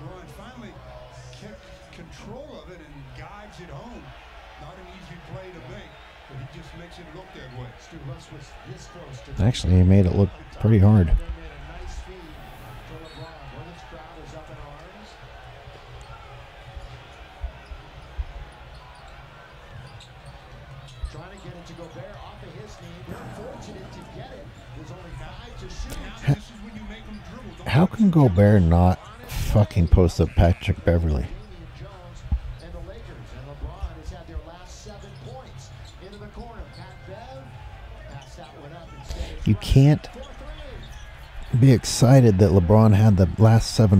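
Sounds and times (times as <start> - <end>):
crowd noise: 0.0 - 43.9
crowd murmuring: 23.0 - 26.4.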